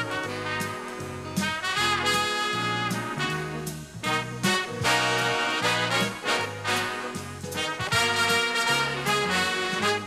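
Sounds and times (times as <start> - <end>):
swing big band playing jazz: 0.0 - 10.0.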